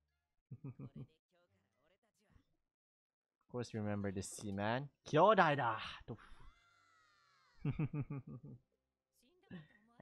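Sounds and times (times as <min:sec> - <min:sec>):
faint high-pitched cry: 0:06.3 - 0:07.7
man laughing loudly: 0:07.6 - 0:08.6.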